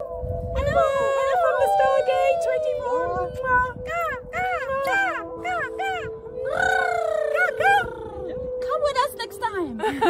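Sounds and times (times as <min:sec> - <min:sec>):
person's wordless wavering calls: 0:04.2 - 0:08.5.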